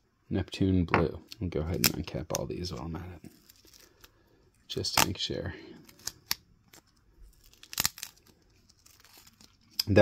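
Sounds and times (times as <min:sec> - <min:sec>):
tape crackling: 0:01.2 - 0:10.0
tape ripping: 0:05.8 - 0:10.0.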